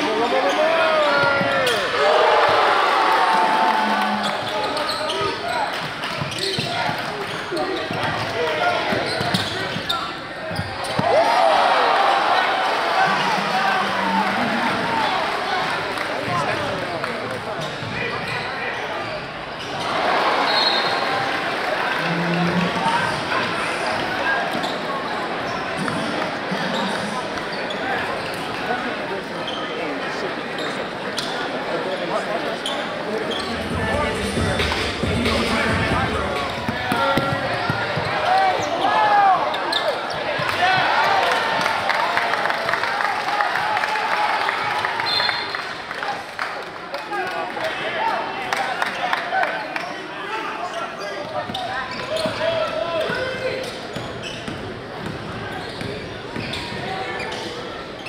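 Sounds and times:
crowd talking and shouting: 0:00.0 - 0:58.0.

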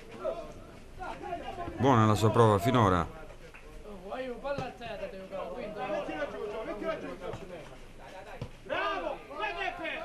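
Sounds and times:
voices talking and calling out: 0:00.0 - 0:10.0.

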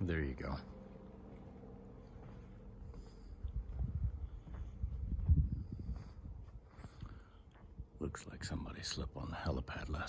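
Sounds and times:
footsteps: 0:01.0 - 0:07.8
wind rumble on microphone: 0:03.3 - 0:08.6.

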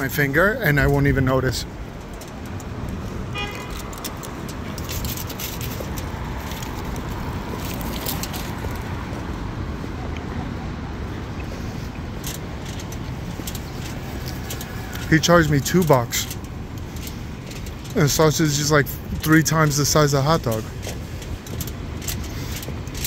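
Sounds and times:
street traffic hum: 0:00.0 - 0:23.0.

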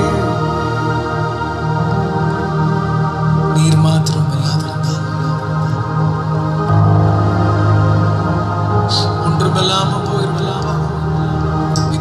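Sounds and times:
sustained instrumental backing: 0:00.0 - 0:12.0.

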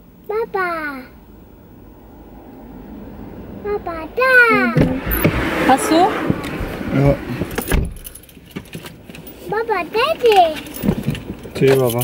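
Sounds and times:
keys jangling: 0:07.6 - 0:09.4, 0:10.3 - 0:12.0.

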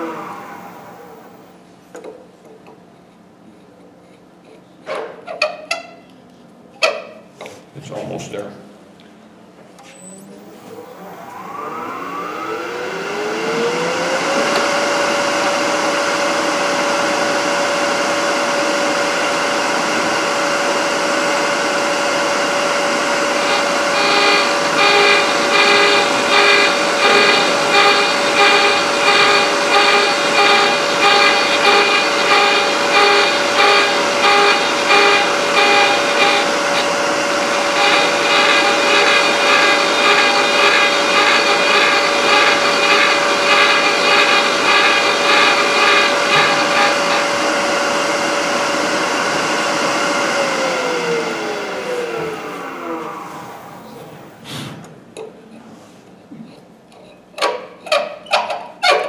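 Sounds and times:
cutter motor whining: 0:00.0 - 0:01.5, 0:10.0 - 0:54.4
cutter scraping thread: 0:23.4 - 0:47.3.

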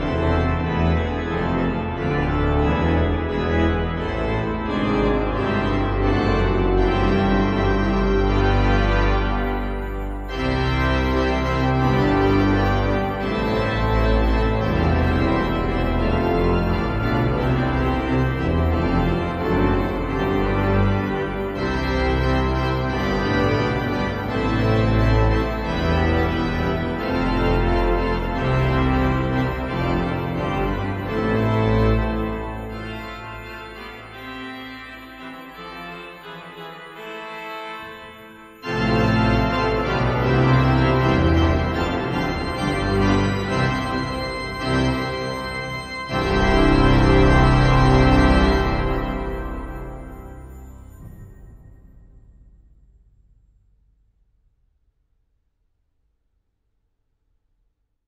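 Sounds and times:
pipe organ playing festive postlude: 0:00.0 - 0:52.1
heavy organ pedal bass: 0:00.0 - 0:52.8.

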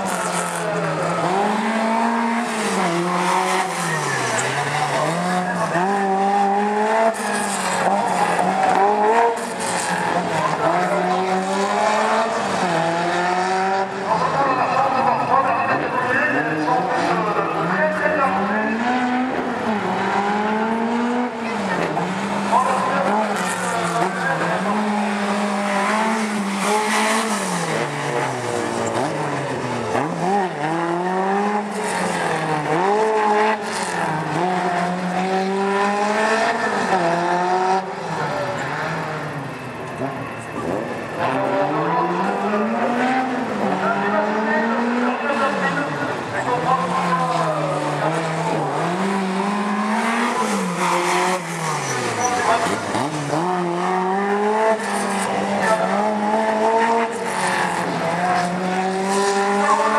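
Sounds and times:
rally car engine revving: 0:00.0 - 0:59.9.

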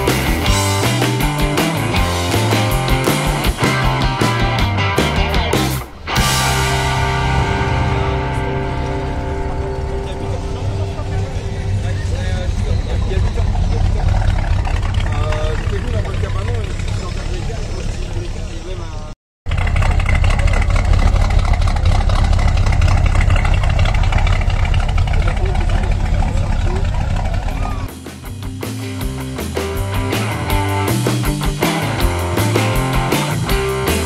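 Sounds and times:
guitar rock music: 0:00.0 - 0:12.2, 0:27.7 - 0:34.0
car engine idling: 0:00.0 - 0:34.0
voices: 0:08.0 - 0:19.2, 0:25.1 - 0:28.0.

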